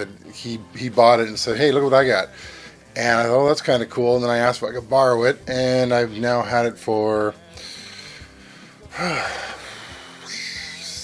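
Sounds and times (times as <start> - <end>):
man exhaling: 7.6 - 11.0.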